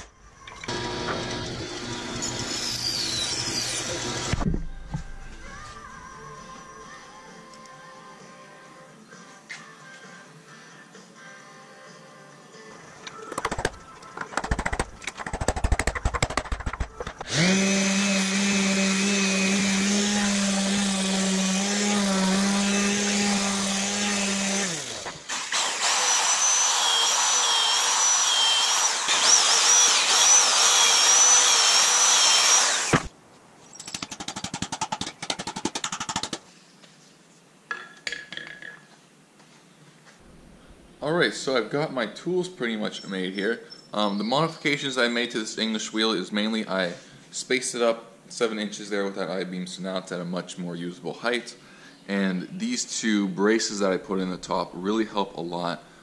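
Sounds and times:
power tool high whine: 0.7 - 4.4, 17.2 - 33.1
knocks and clatter: 13.4 - 17.3
power tool motor hum: 17.2 - 33.1.

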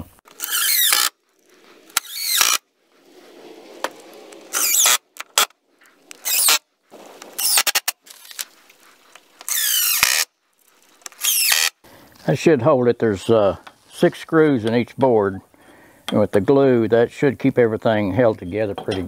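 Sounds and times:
cordless drill whining: 0.3 - 1.2, 1.9 - 2.6, 4.5 - 5.4, 6.1 - 6.6, 9.4 - 10.3, 11.0 - 11.8.

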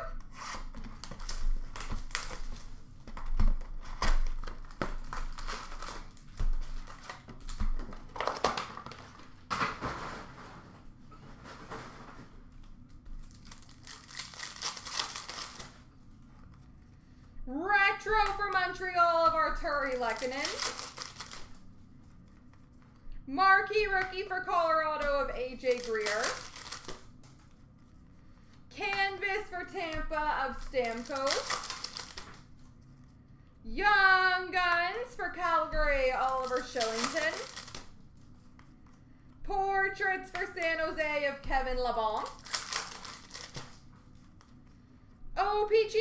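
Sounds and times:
packaging tearing: 0.3 - 2.7, 3.6 - 9.2, 13.2 - 15.8, 19.8 - 21.6, 25.6 - 27.0, 30.6 - 32.4, 36.2 - 37.9, 42.2 - 43.8
card packs crinkling: 0.5 - 9.6, 13.2 - 15.9, 18.1 - 21.6, 25.6 - 27.1, 30.4 - 32.7, 36.0 - 38.6, 42.1 - 44.6.

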